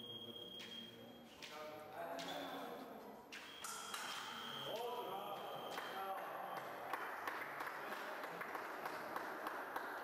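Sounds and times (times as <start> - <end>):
hubbub of busy hall: 0.0 - 10.0.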